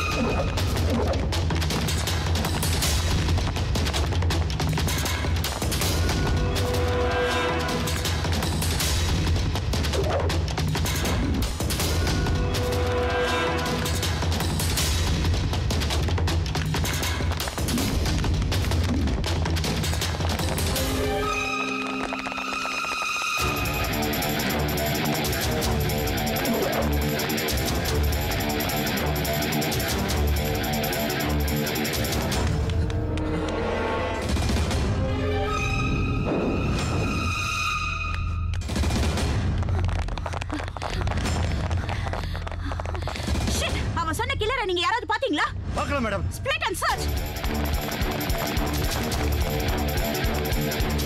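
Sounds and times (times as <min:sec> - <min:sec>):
fast action film score: 0:00.0 - 0:51.0
fast dense percussion hits: 0:47.0 - 0:51.0.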